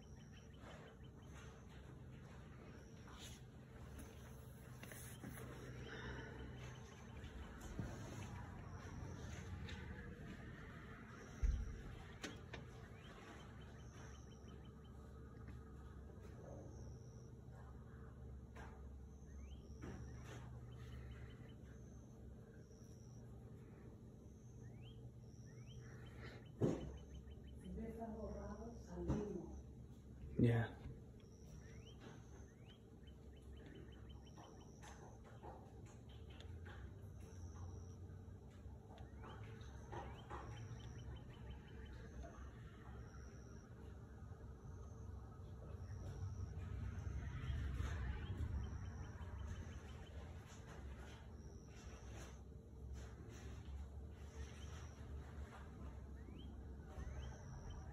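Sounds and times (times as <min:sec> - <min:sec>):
bird song: 0:00.0 - 0:57.9
faint high chirps: 0:00.0 - 0:57.9
low rumble: 0:44.1 - 0:50.6.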